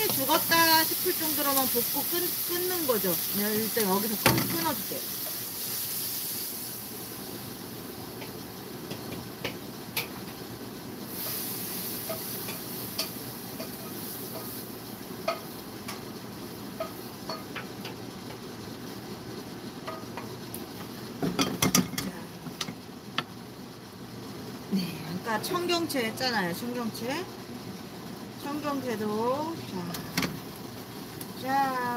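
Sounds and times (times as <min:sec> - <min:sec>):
vegetables sizzling in a wok: 0:00.0 - 0:31.9
utensil and pan clatter: 0:03.2 - 0:05.5, 0:21.2 - 0:22.8.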